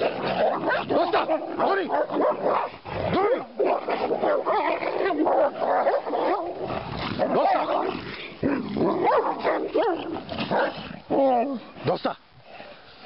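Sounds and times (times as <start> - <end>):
dogs growling: 0.0 - 11.8
dogs yelping and whining: 0.4 - 7.8.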